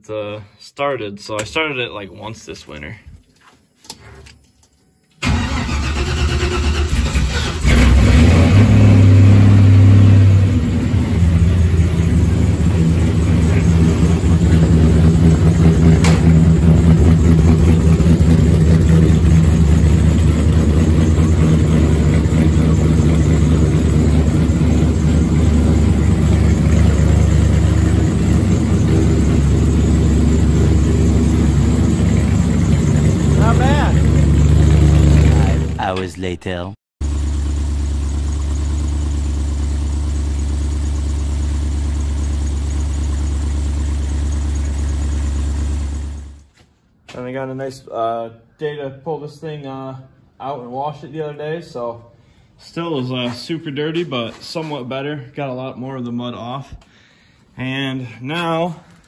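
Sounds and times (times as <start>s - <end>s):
truck engine starting and idling: 5.2s - 36.4s, 37.0s - 46.5s.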